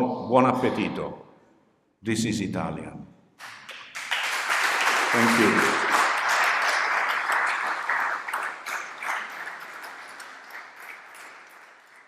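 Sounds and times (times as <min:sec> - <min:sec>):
audience applauding: 0:03.4 - 0:12.0.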